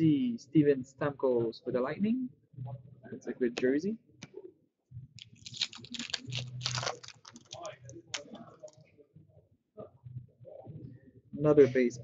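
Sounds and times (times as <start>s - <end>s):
cards clicking and snapping: 5.2s - 8.7s.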